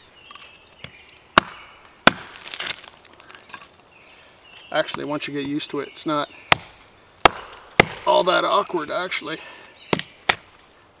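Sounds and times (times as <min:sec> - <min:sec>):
wood splitting crackle: 0:00.3 - 0:05.8, 0:06.5 - 0:09.0
knife chopping wood: 0:00.8 - 0:02.9, 0:06.5 - 0:08.4.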